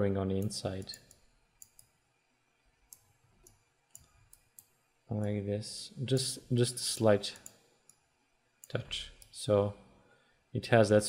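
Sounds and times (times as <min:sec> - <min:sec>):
computer mouse clicks: 0:00.4 - 0:02.0, 0:02.9 - 0:05.3, 0:07.3 - 0:08.0.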